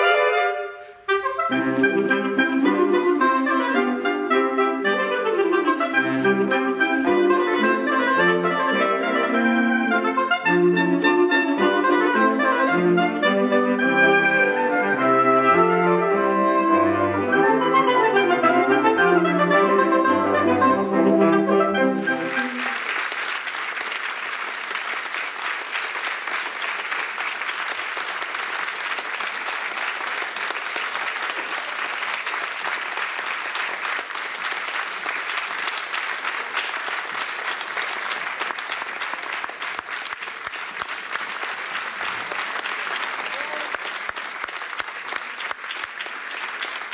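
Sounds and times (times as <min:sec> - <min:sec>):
audience applauding: 0:21.9 - 0:46.9.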